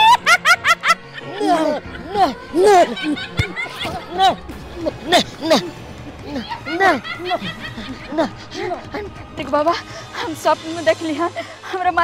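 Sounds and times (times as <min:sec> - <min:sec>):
woman cackling laugh: 0:00.0 - 0:04.3, 0:06.3 - 0:08.3.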